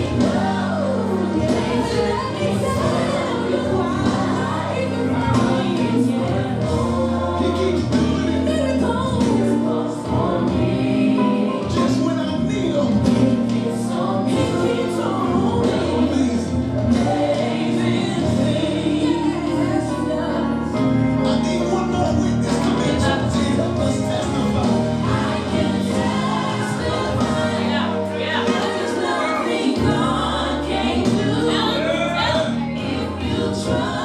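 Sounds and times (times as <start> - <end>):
choir singing gospel music: 0.0 - 34.0.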